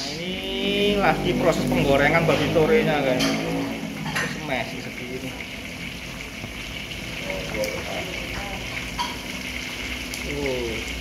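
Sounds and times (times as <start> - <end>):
meat deep-frying in oil: 0.0 - 11.0.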